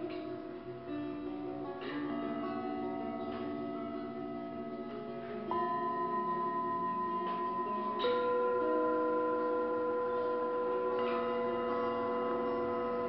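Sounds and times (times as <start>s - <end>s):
singing bowls ringing: 1.5s - 13.0s
singing bowl struck: 2.9s - 13.0s.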